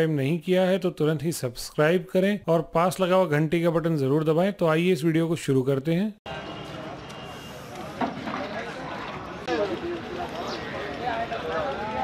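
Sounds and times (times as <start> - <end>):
steady background noise: 6.3 - 12.0.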